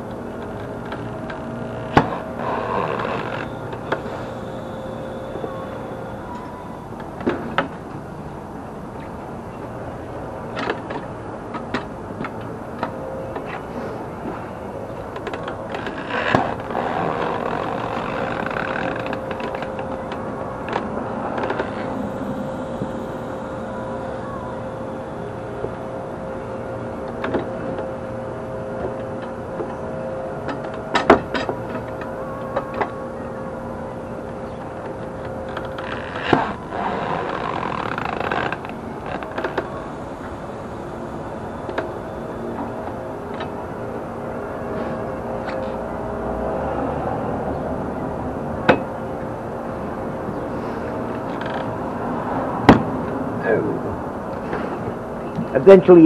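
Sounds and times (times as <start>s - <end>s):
faint steady tone: 0.0s - 56.0s.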